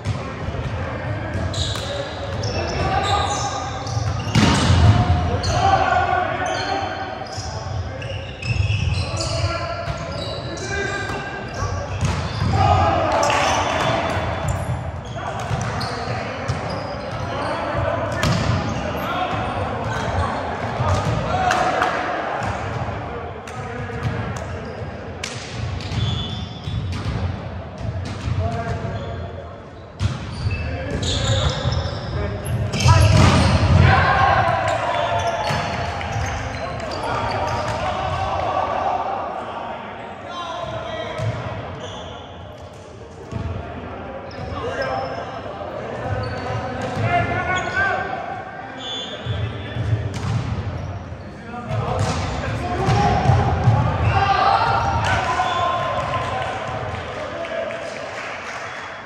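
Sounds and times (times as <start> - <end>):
players shouting: 1.1 - 23.3, 30.5 - 42.1, 43.4 - 49.4, 51.6 - 58.0.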